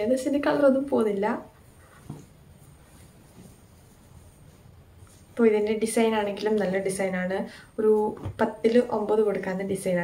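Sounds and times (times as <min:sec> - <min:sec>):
woman speaking: 0:00.0 - 0:01.6, 0:05.4 - 0:10.0.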